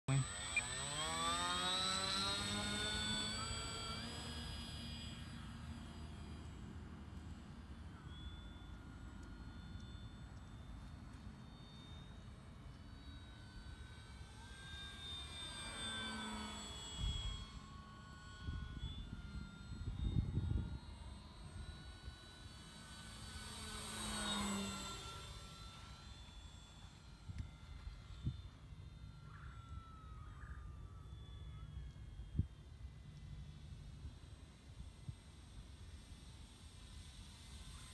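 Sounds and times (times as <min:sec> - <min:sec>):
model plane motor whine: 0:00.1 - 0:37.9.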